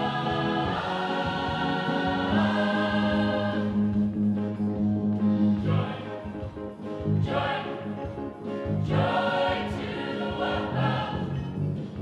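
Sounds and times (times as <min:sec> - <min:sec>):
gospel choir singing: 0:00.0 - 0:04.2, 0:05.5 - 0:06.4, 0:07.0 - 0:11.7.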